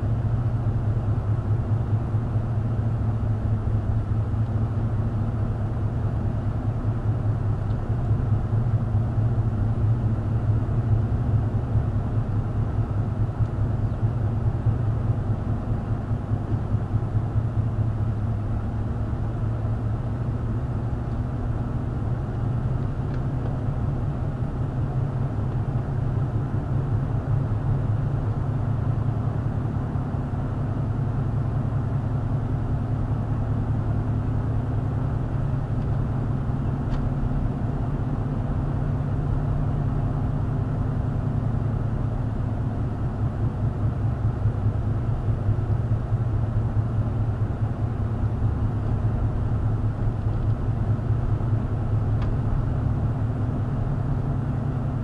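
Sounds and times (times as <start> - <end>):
car engine and road hum: 0.0 - 55.0.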